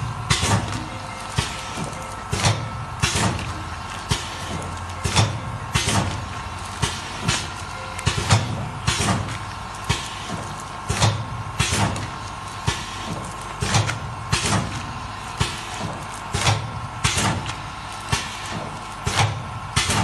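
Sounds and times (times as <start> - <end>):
machine humming: 0.0 - 20.0
machine clacks: 0.3 - 20.0.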